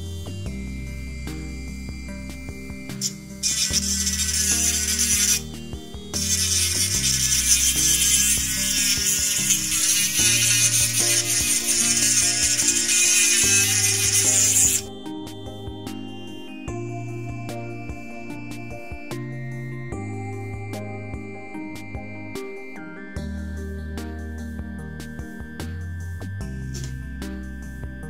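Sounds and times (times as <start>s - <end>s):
background music: 0.0s - 28.0s
rotary tool grinding metal: 3.0s - 5.5s, 6.2s - 14.9s.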